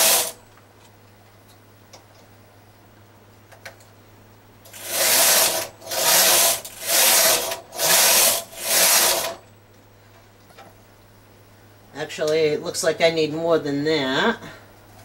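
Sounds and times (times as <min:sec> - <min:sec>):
knitting machine carriage sliding: 0:00.0 - 0:00.4, 0:04.7 - 0:09.4.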